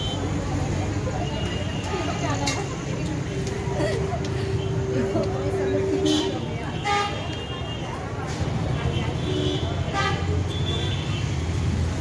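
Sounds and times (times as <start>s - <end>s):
street rumble: 0.0s - 12.0s.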